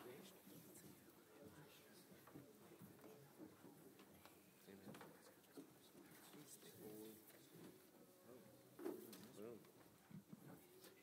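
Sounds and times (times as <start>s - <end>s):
faint talking off-microphone: 0.0s - 11.0s.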